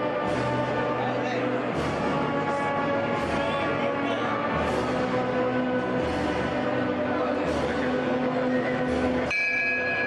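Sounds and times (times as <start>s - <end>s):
crowd murmuring in a church: 0.0s - 9.4s
metal bell struck: 9.3s - 10.0s.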